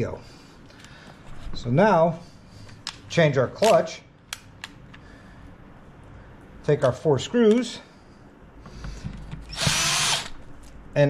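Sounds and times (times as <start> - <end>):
cordless drill driving a screw: 9.5 - 10.4.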